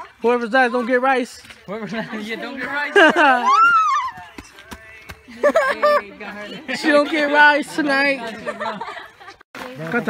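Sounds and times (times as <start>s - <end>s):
footsteps running on dirt: 0.0s - 5.5s.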